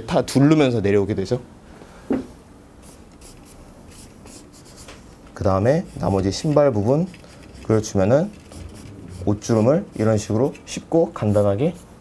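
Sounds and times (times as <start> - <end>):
pencil scratching on paper: 2.8 - 4.9, 5.8 - 10.6, 11.2 - 11.9.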